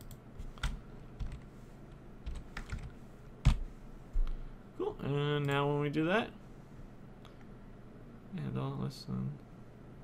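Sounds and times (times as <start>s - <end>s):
computer keyboard keystrokes: 2.2s - 3.6s.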